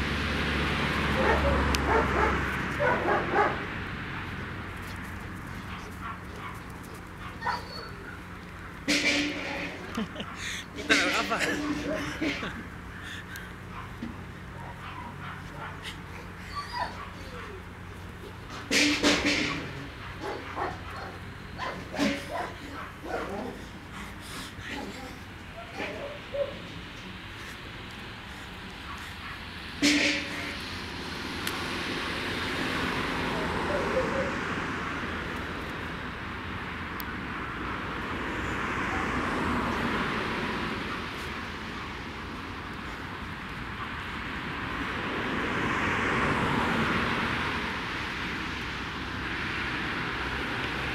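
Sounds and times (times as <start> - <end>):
distant engine rush: 0.0 - 50.9
canine whimpering: 15.8 - 18.4, 21.6 - 26.6.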